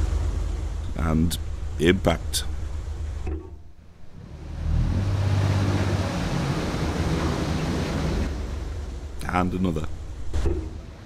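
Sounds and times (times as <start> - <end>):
churning water rushing: 0.0 - 3.4, 4.0 - 11.0
diesel engine humming: 0.0 - 11.0.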